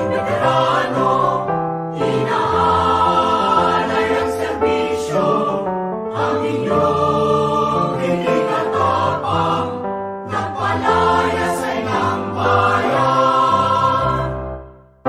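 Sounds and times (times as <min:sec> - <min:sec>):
choir singing held chords: 0:00.0 - 0:14.8.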